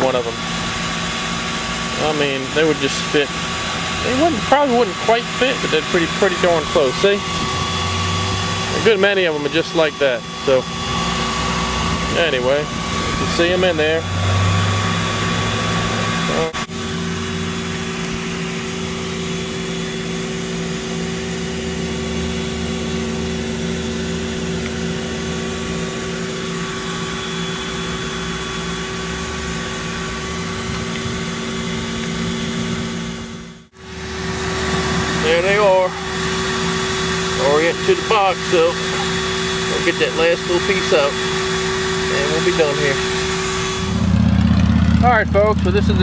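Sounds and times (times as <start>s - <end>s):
steady machine hum: 0.0s - 46.0s.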